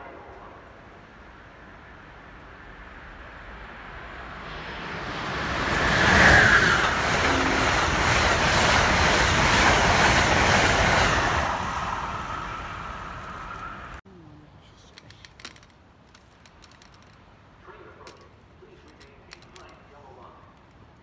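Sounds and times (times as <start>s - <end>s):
train passing at speed: 0.0s - 14.0s.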